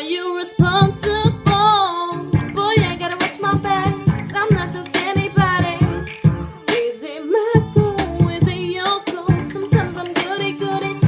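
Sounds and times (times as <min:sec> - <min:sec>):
woman singing: 0:00.0 - 0:11.0
backing track with beat: 0:00.6 - 0:07.0, 0:07.6 - 0:11.0.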